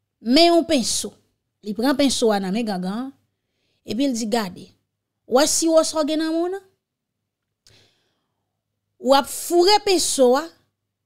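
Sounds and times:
breath into microphone: 3.3 - 3.9, 7.6 - 8.5.

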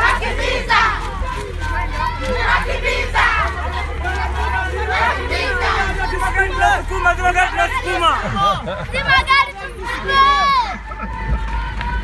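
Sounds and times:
children shouting: 0.0 - 12.0
low rumble of running: 0.0 - 12.0.

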